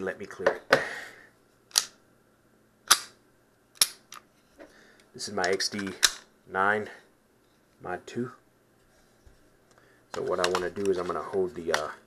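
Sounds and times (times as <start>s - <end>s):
pistol slide metallic clacks: 2.9s - 3.2s, 3.8s - 4.3s.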